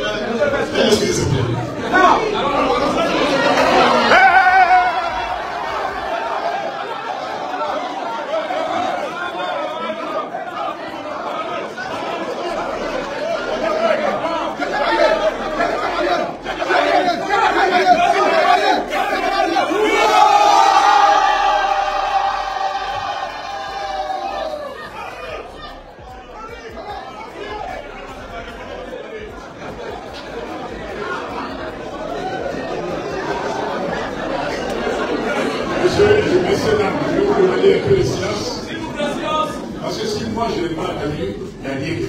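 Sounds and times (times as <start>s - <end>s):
murmur of crowd: 0.0s - 42.0s
men chanting loudly: 8.6s - 40.3s.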